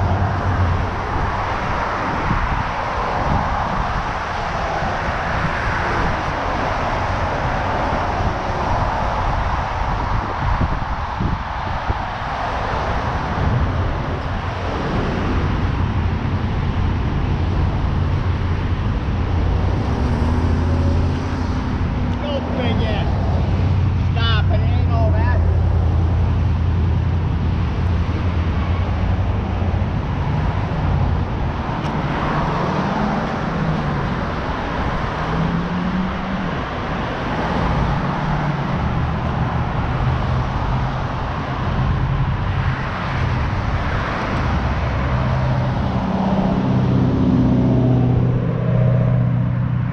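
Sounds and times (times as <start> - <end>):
cars passing: 0.0 - 49.9.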